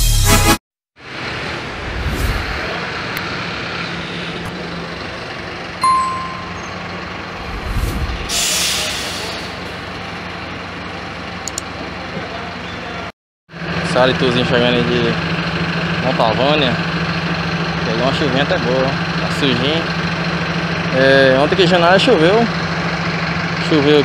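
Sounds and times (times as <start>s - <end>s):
bus diesel engine running: 1.0s - 24.0s
short high beep: 5.8s - 6.9s
air brakes hissing: 8.2s - 9.8s.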